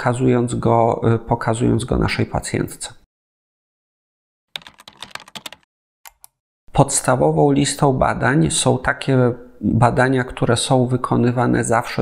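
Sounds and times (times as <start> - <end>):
keyboard typing clicks: 4.6 - 6.4.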